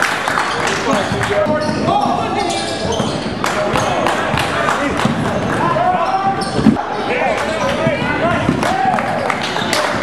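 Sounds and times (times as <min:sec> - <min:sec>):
sneakers squeaking on wooden floor: 0:00.5 - 0:04.4, 0:05.0 - 0:08.6.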